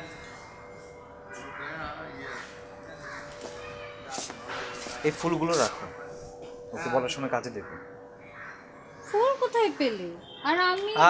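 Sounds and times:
crow-like bird caws: 0:00.1 - 0:05.2, 0:07.4 - 0:10.4.

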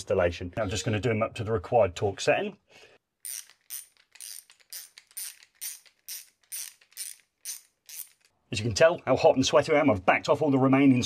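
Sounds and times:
torque screwdriver clicking: 0:03.2 - 0:08.3.

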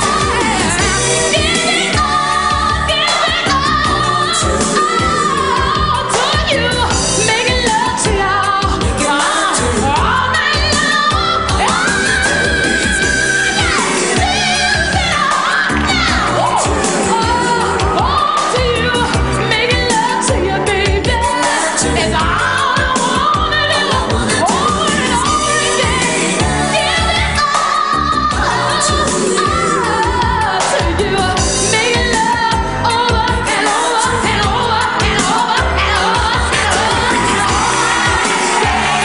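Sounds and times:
pop band playing: 0:00.0 - 0:39.0
woman singing lead vocal: 0:00.0 - 0:39.0
backing singers: 0:33.3 - 0:39.0.

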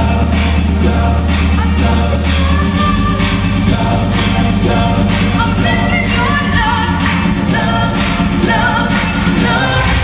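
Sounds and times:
live pop band with synth: 0:00.0 - 0:10.0.

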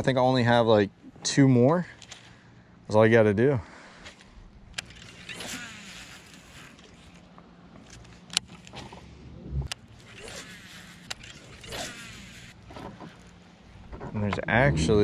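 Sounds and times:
low steady hum: 0:00.0 - 0:15.0
fishing reel clicks: 0:04.7 - 0:08.6, 0:09.7 - 0:12.6.

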